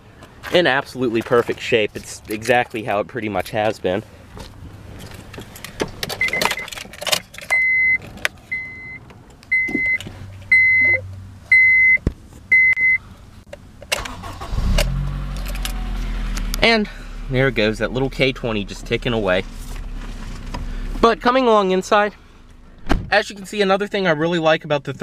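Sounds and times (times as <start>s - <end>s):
car engine cranking and idling: 0.0s - 25.0s
keys clicking and rattling: 5.0s - 8.3s
car warning chime beeping: 6.2s - 6.7s, 7.5s - 13.0s.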